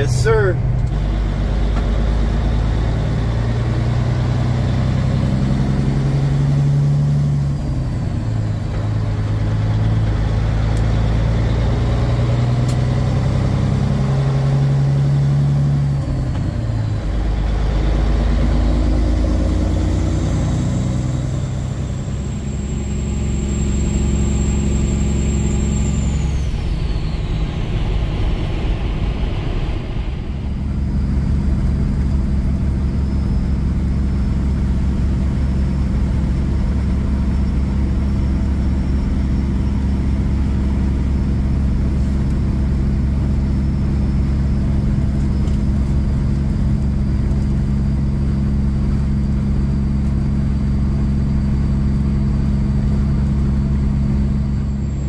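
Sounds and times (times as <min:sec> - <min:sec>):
diesel truck engine shifting gears: 0:00.0 - 0:55.0.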